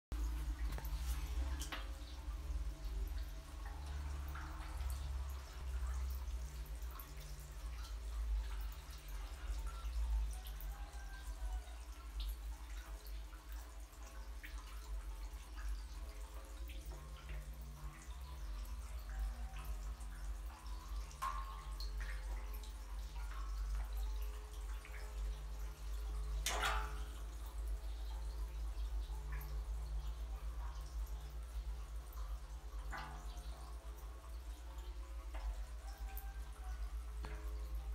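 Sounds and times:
water dripping and splashing: 0:00.1 - 0:37.9.

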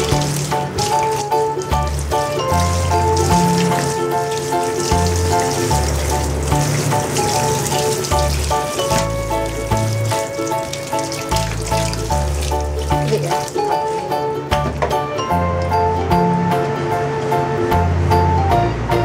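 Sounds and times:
water spraying from shower head: 0:00.0 - 0:14.8
background music: 0:00.0 - 0:19.0.

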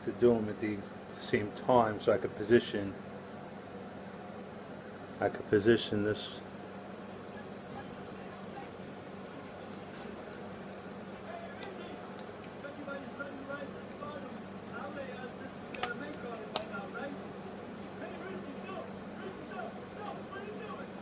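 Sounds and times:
low room hum: 0:00.0 - 0:21.0
small metal parts clicking: 0:15.8 - 0:16.2.

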